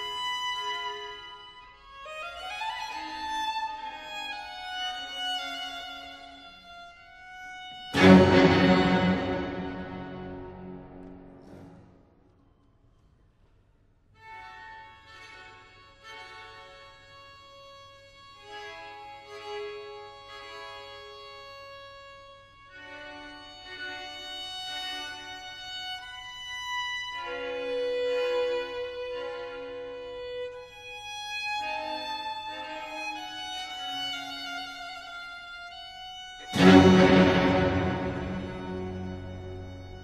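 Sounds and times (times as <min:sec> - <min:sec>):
solo violin slow melody: 0:00.0 - 0:11.4, 0:14.2 - 0:40.0
orchestral violins repeated notes: 0:07.8 - 0:11.9, 0:35.9 - 0:40.0.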